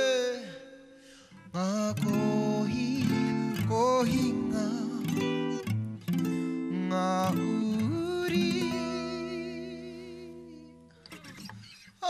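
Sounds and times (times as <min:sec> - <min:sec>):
acoustic guitar chord ringing: 0:01.4 - 0:11.8.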